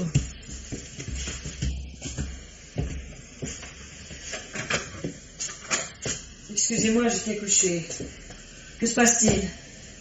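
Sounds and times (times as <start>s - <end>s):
footsteps: 0.0s - 9.8s
broadcast hiss: 0.0s - 10.0s.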